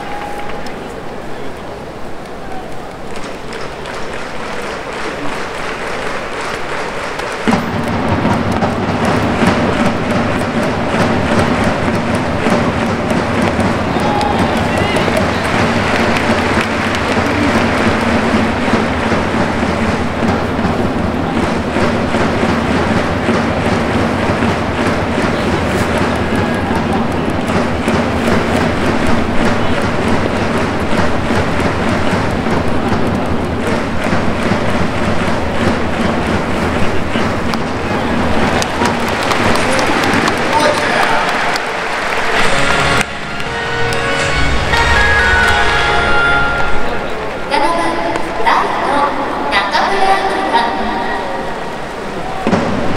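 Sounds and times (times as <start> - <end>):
stadium crowd chanting: 0.0 - 48.2
music playing: 41.7 - 47.8.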